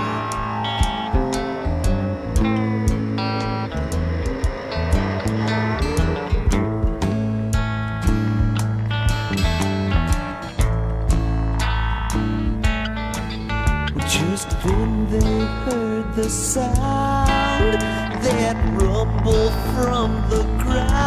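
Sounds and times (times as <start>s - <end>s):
sliding lead line: 0.0s - 14.3s
country rock band playing: 0.0s - 21.0s.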